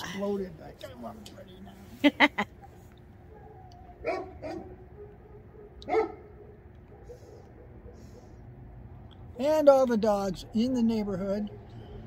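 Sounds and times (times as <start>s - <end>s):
dogs barking: 3.2s - 8.5s, 10.1s - 12.0s.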